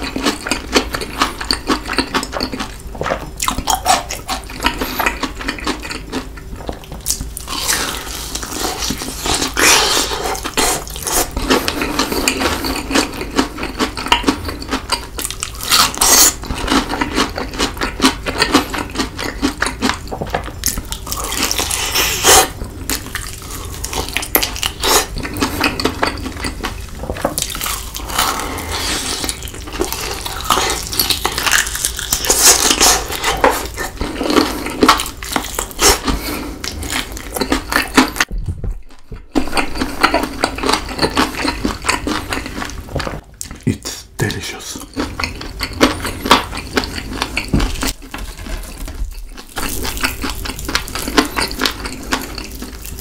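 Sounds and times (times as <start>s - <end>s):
wet mouth sounds: 0.0s - 16.5s
crunching fried chicken: 0.0s - 38.3s, 39.4s - 53.0s.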